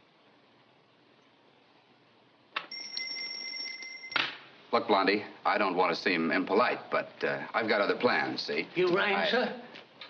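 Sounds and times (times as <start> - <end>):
call bell ringing: 2.7 - 4.3.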